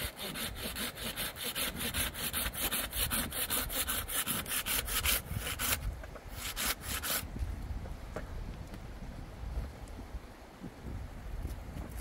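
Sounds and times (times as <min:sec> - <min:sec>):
hand saw cutting branch: 0:00.0 - 0:07.3.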